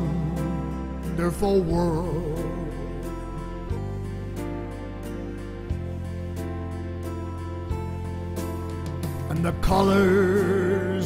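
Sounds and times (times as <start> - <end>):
gentle piano music: 0.0 - 11.0.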